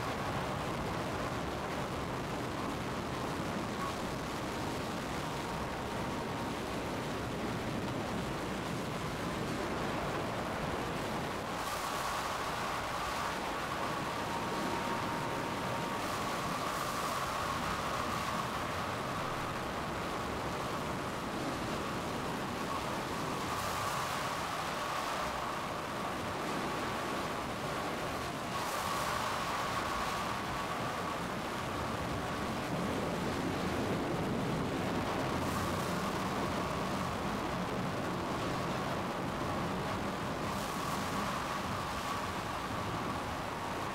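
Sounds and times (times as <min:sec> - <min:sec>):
rushing tornado wind: 0:00.0 - 0:43.9
wind gusts: 0:00.0 - 0:43.9.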